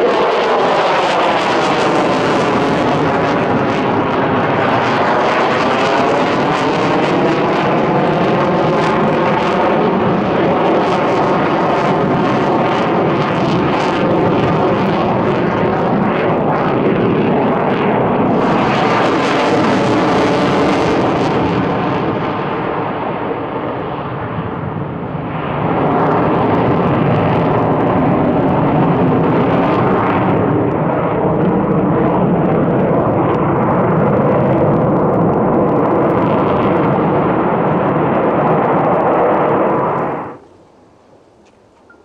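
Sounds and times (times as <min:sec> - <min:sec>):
jet engines roaring: 0:00.0 - 0:42.0.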